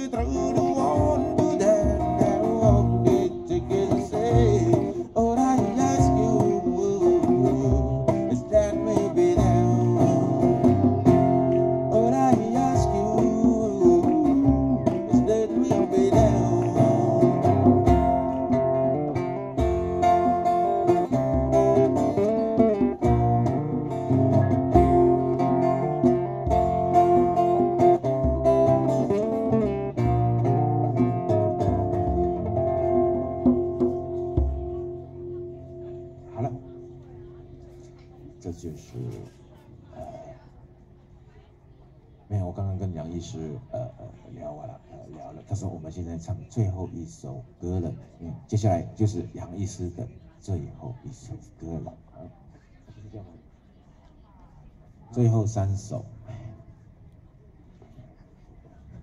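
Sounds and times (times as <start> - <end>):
acoustic guitars playing: 0.0 - 41.4
djembe beat: 0.2 - 37.5.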